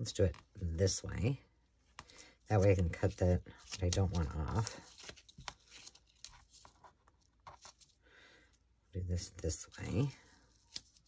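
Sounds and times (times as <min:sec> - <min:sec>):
paper and lace rustling: 0:02.4 - 0:08.0, 0:09.6 - 0:11.0.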